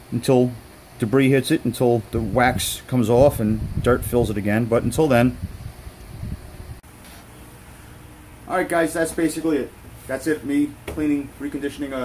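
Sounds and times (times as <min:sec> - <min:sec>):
low room tone hum: 0:00.0 - 0:12.0.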